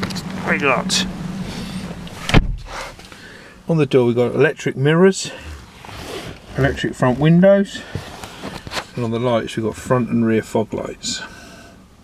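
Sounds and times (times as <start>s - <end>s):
steady outside hum: 0.0s - 12.0s
car door thud: 1.9s - 3.0s.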